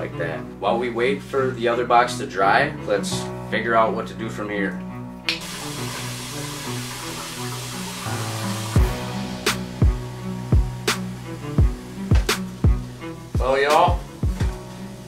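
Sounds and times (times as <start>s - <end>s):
background music: 0.0s - 15.0s
meat sizzling in a frying pan: 5.4s - 15.0s
deep kick drum beat: 8.8s - 12.8s, 13.4s - 14.6s.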